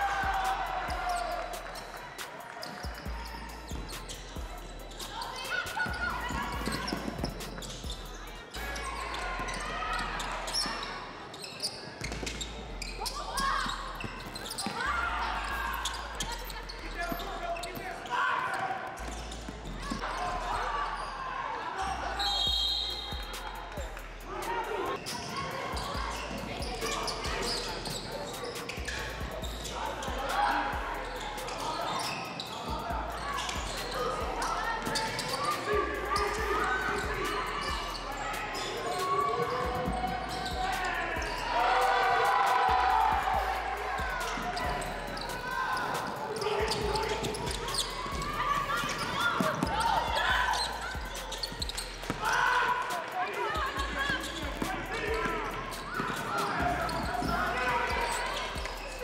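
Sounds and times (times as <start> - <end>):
echoing voices: 0.0 - 59.0.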